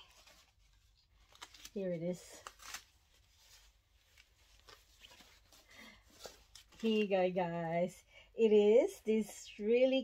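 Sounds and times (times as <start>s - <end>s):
plastic rustling and crinkling: 0.0s - 7.8s.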